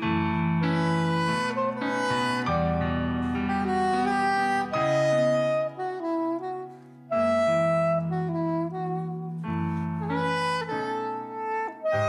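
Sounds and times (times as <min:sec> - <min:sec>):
electric piano chords: 0:00.0 - 0:12.0
soprano saxophone jazz melody: 0:00.0 - 0:12.0.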